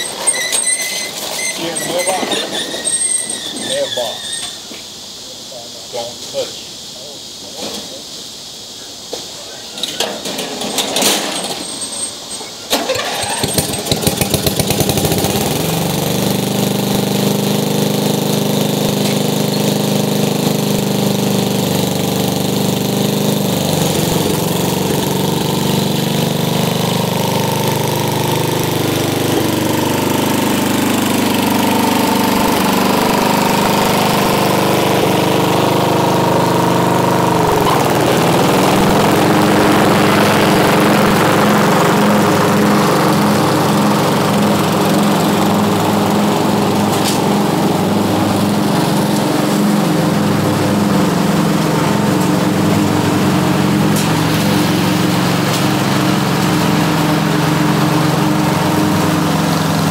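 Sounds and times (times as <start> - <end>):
lawn tractor engine running: 0.0 - 4.1, 9.8 - 59.9
lawn tractor engine cranking: 0.0 - 4.6, 9.8 - 59.9.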